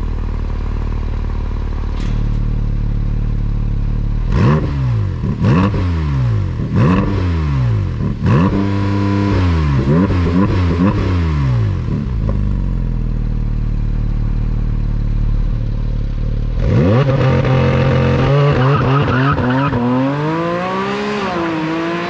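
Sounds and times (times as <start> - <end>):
car engine idling and revving: 0.0 - 22.0.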